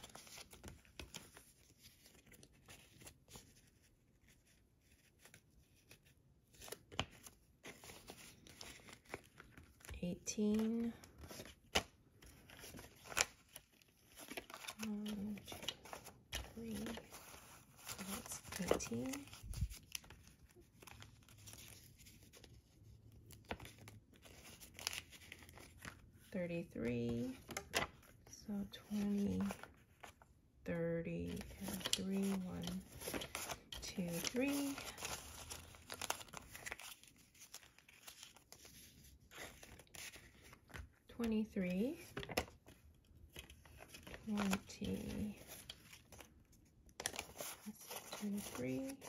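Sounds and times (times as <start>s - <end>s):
paper crackles: 0.0s - 26.3s, 26.9s - 30.3s, 31.2s - 41.1s, 41.9s - 49.0s
paper banknotes rustling: 0.0s - 30.2s, 31.2s - 49.0s.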